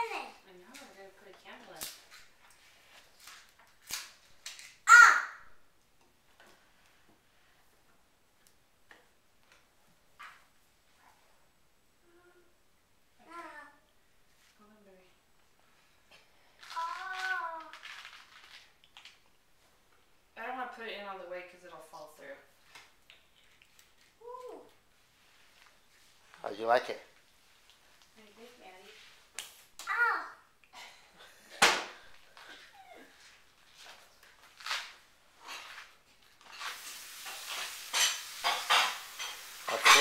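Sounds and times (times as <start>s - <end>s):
small child vocalizing: 4.8s - 5.5s, 16.7s - 17.8s, 24.2s - 24.8s, 29.9s - 30.5s
child squealing: 4.9s - 5.4s.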